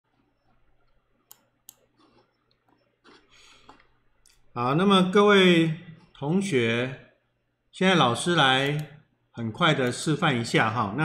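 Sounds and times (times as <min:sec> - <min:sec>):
computer mouse clicks: 0:00.4 - 0:04.4, 0:08.6 - 0:09.0.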